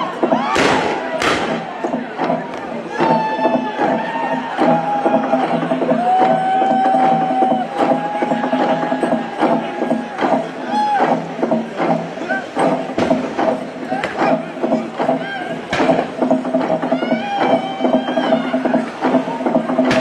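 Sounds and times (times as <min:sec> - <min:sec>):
log drum knocking: 0:00.0 - 0:20.0.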